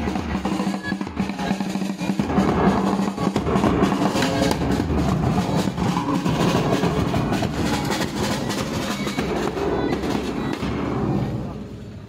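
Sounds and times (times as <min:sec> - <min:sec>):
marching bass drums beaten hard: 0:00.0 - 0:11.0.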